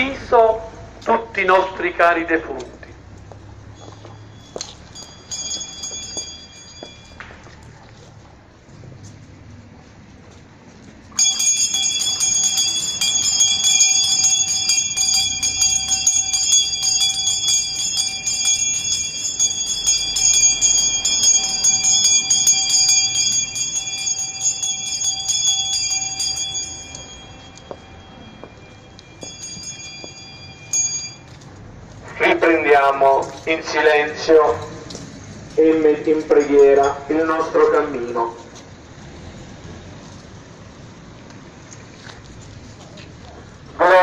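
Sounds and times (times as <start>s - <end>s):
hand bells ringing: 3.3s - 7.7s, 11.1s - 32.0s, 33.2s - 38.0s.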